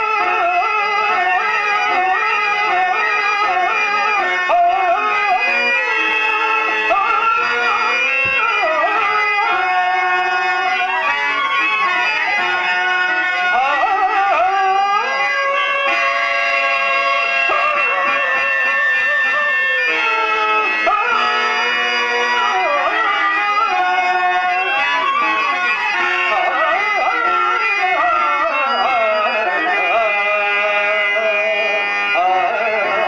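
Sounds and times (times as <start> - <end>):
harmonium holding steady notes: 0.0 - 33.0
man singing ornamented verse: 0.0 - 33.0.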